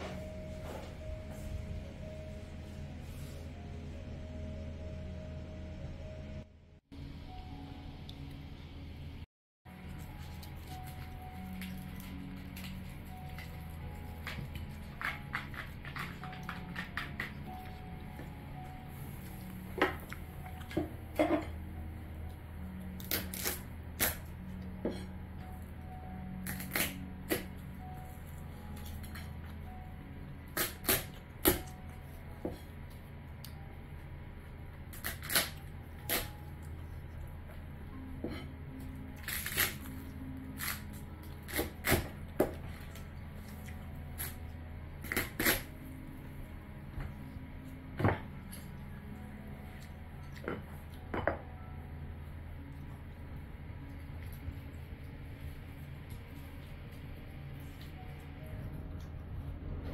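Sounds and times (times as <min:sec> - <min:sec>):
knife cracking crab shell: 0:35.0 - 0:36.3, 0:39.2 - 0:39.8.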